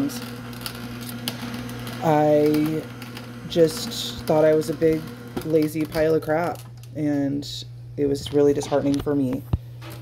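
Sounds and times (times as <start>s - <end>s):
produce crackling and snapping: 0.0s - 3.4s
juicer humming: 0.0s - 10.0s.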